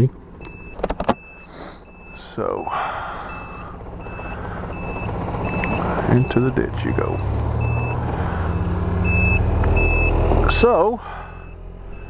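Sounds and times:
pickup truck rumbling past: 0:00.0 - 0:12.0
turn signal beeping: 0:00.0 - 0:12.0.

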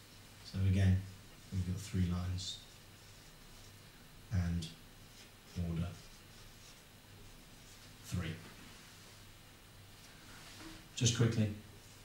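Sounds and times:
marker pen scratching on whiteboard: 0:02.5 - 0:03.8, 0:05.0 - 0:07.9.

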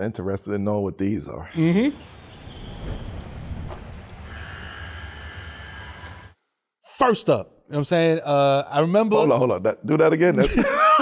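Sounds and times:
noisy clatter: 0:01.7 - 0:06.3.

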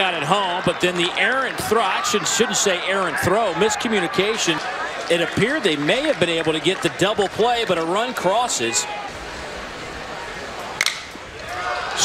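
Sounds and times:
crowd noise: 0:00.0 - 0:12.0
metal bat hitting baseball: 0:10.8 - 0:11.2.

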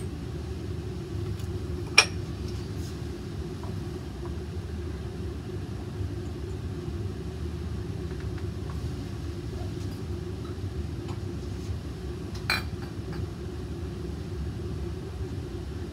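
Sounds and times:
ventilation rumble: 0:00.0 - 0:15.9.

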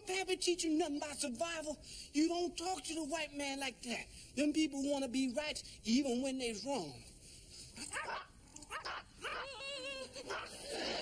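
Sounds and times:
small dogs yapping: 0:07.8 - 0:10.6.

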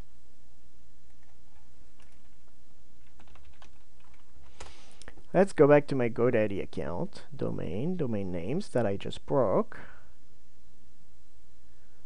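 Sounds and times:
steady low hum: 0:00.0 - 0:12.0
computer keyboard typing: 0:03.0 - 0:04.7.

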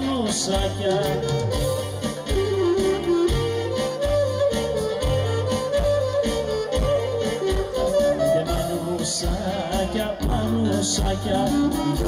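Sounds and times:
folk band playing dance music: 0:00.0 - 0:12.0.

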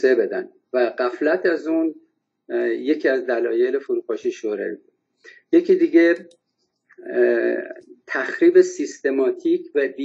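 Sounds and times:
man speaking: 0:00.0 - 0:06.3, 0:07.0 - 0:10.0
man's drawn-out hesitation sound: 0:02.5 - 0:06.3, 0:07.0 - 0:10.0.

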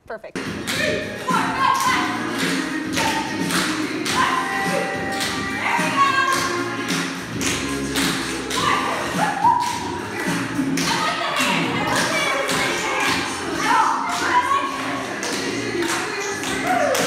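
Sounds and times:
song with steady beat: 0:00.3 - 0:17.0.

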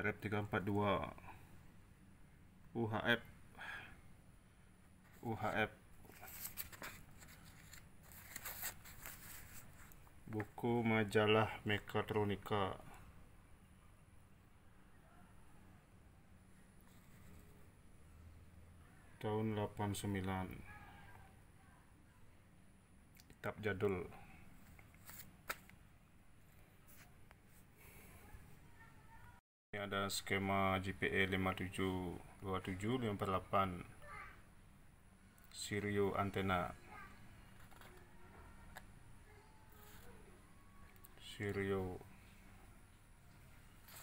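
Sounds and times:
paper pages rustling: 0:06.1 - 0:10.0, 0:24.7 - 0:25.7, 0:43.8 - 0:44.0.

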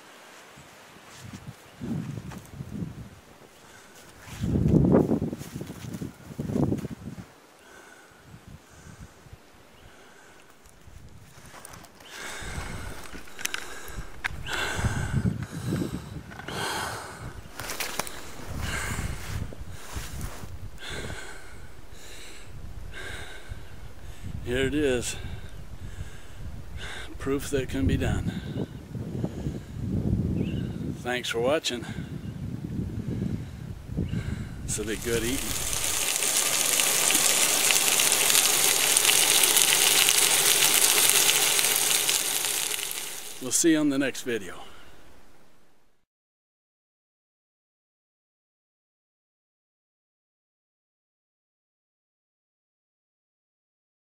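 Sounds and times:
man breathing hard: 0:07.6 - 0:10.6, 0:11.4 - 0:24.4, 0:25.2 - 0:27.2, 0:28.3 - 0:30.0, 0:32.9 - 0:34.7
coat fabric rustling: 0:17.5 - 0:20.7
meat sizzling in skillet: 0:34.7 - 0:43.7.

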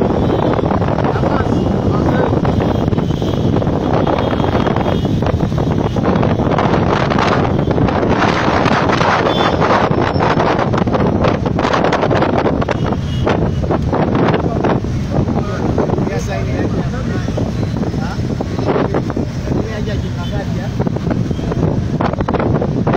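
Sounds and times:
motorcycle engines rumbling: 0:00.0 - 0:22.9
wind buffeting microphone: 0:00.0 - 0:22.9.

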